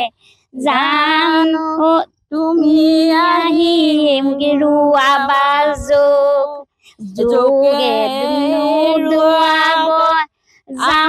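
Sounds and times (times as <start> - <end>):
woman singing unaccompanied: 0.0 - 11.0.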